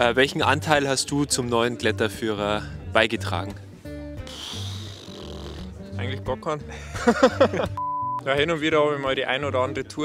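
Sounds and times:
breathy exhale: 4.2s - 5.7s.

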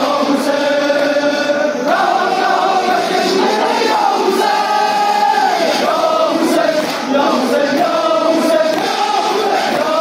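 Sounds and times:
men chanting in unison: 0.0s - 10.0s.

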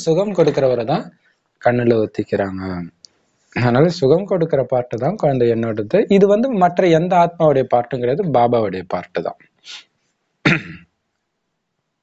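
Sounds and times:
man clearing throat: 10.4s - 10.9s.

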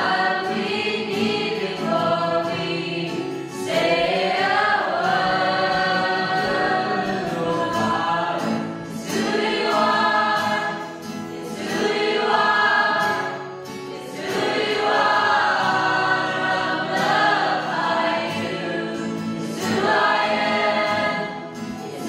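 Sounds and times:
acoustic guitar: 0.0s - 22.0s
choir singing: 0.0s - 22.0s.

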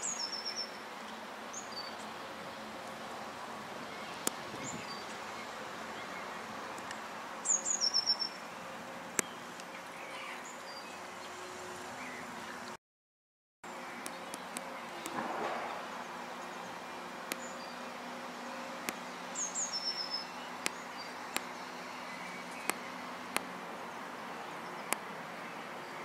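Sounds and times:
bird chirp: 0.0s - 2.1s, 3.9s - 6.8s, 7.4s - 12.8s, 13.7s - 23.2s.

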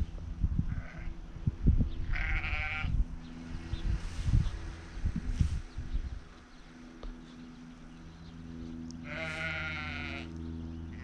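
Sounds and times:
low gusty rumble: 0.0s - 11.0s
sheep bleating: 2.1s - 3.0s, 9.0s - 11.0s.

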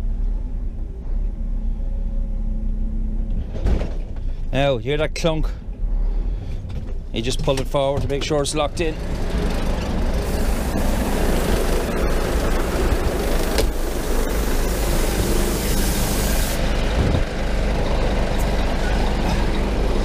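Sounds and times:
truck diesel engine idling: 8.2s - 20.0s
air hiss: 10.2s - 16.6s.

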